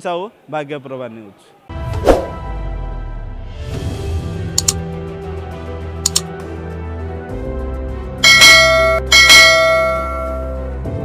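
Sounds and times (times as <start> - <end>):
background music: 1.7 - 11.0
bright bell chimes: 8.2 - 10.6.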